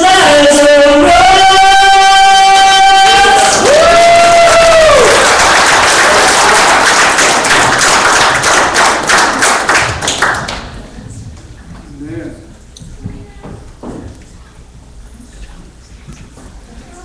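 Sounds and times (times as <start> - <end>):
congregation clapping: 3.1 - 10.8.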